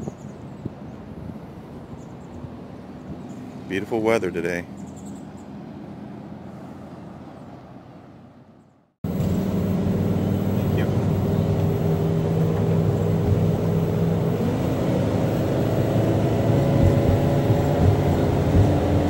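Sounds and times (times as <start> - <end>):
vehicle engine and road noise: 0.0 - 19.0.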